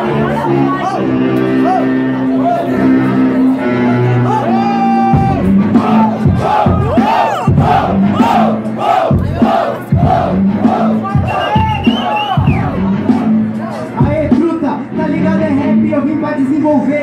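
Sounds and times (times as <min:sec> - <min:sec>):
crowd chanting and shouting: 0:00.0 - 0:15.7
hip-hop beat: 0:00.0 - 0:17.0.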